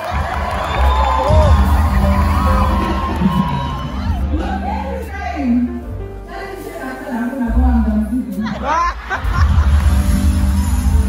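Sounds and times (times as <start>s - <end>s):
live band music over speakers: 0.0s - 11.0s.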